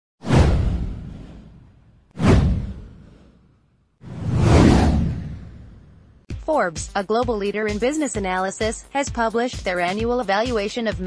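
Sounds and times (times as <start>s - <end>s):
deep boom: 0.2s - 3.3s
whoosh sound effect: 0.2s - 6.1s.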